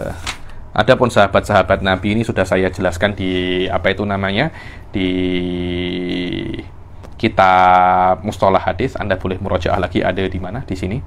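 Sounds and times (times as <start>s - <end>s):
man's drawn-out hesitation sound: 0.9s - 10.9s.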